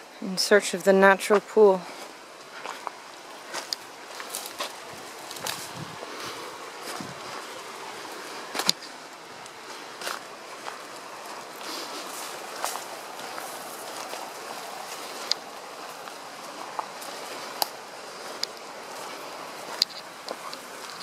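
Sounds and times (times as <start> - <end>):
steady background hiss: 0.0 - 21.0
footsteps on dirt and rock trail: 0.7 - 21.0.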